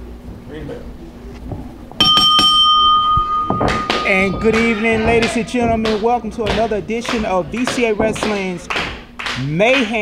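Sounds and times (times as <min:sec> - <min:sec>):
ring bell struck: 0:02.0 - 0:05.3.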